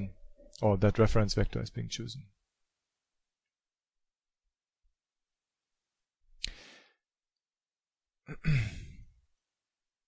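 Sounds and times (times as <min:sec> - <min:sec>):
man coughing: 0:08.3 - 0:09.1.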